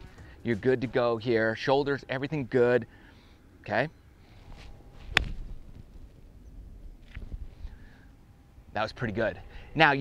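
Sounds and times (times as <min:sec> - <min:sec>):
golf club striking ball: 0:05.1 - 0:05.7.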